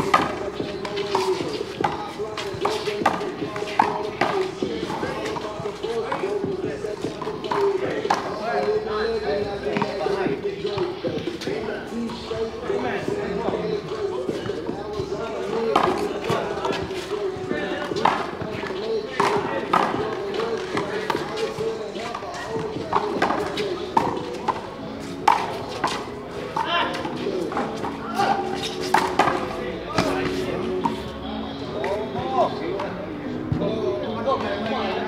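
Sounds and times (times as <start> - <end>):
background music: 0.0 - 35.0
background voices: 0.0 - 35.0.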